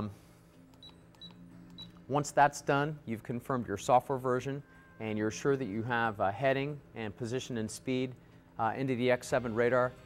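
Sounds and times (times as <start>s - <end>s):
high-pitched key beeps: 0.7s - 2.0s.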